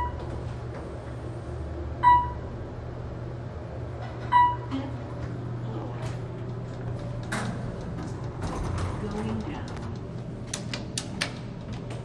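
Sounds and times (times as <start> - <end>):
elevator chime dinging: 0.0 - 0.3, 2.0 - 2.5, 4.3 - 4.7
elevator doors clunk: 0.0 - 1.1, 3.8 - 12.0
elevator car hum: 0.0 - 12.0.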